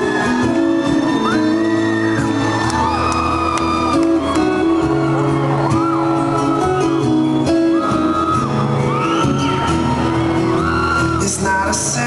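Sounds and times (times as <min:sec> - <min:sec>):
acoustic guitars playing live: 0:00.0 - 0:12.0
audience whooping: 0:00.0 - 0:12.0.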